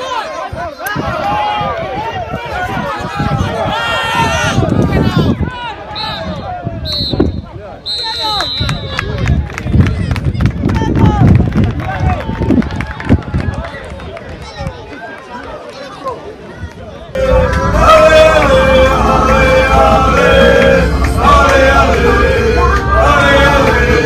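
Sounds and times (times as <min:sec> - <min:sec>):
players shouting: 0:00.0 - 0:07.0, 0:17.2 - 0:24.0
whistle blasts: 0:05.9 - 0:09.1.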